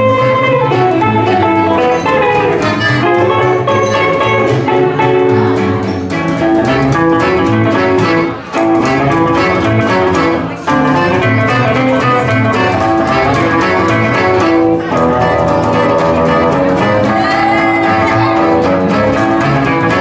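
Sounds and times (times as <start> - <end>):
acoustic swing band playing: 0.0 - 20.0.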